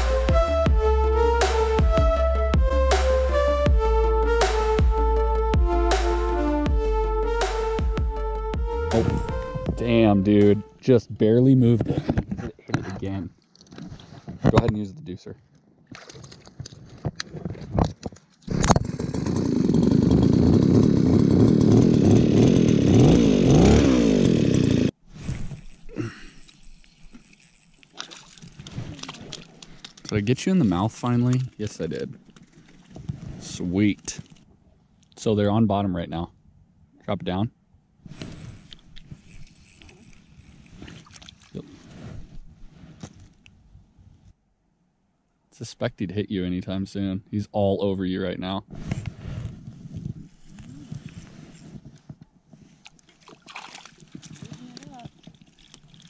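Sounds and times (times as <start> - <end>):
rustling and handling noise: 11.8 - 14.6
ice auger engine revving: 18.5 - 25.0
fishing reel clicks and knocks: 38.6 - 40.6.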